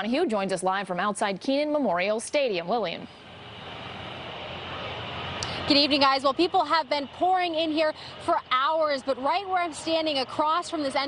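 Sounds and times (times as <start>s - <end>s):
outdoor background din: 0.0s - 11.0s.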